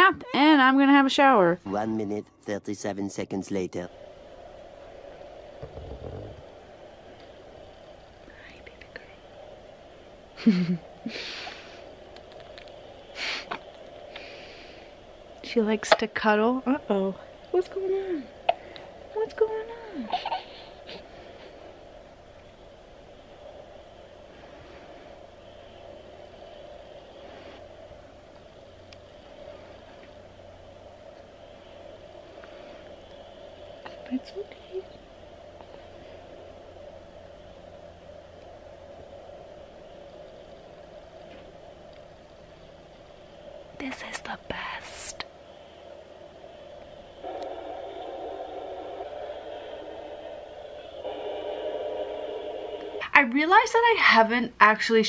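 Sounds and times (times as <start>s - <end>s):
faint steady hum: 0.0s - 55.0s.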